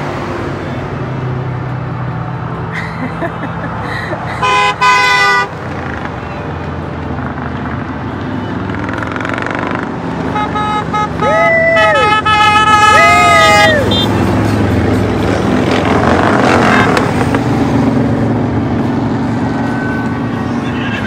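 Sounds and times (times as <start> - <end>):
motorcycles passing by: 0.0 - 21.0
vehicle horn honking: 4.4 - 5.6, 10.3 - 14.3
spectator whooping: 11.2 - 14.0.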